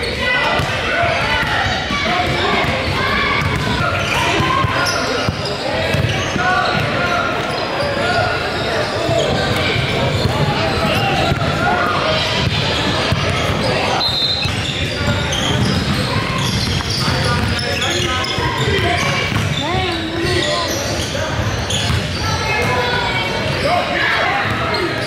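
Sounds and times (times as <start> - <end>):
echoing chatter of many voices: 0.0 - 25.0.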